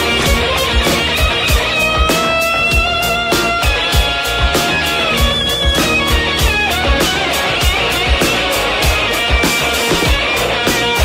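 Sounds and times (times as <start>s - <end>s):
electric guitar: 0.0s - 11.0s
steady drum beat: 0.0s - 11.0s.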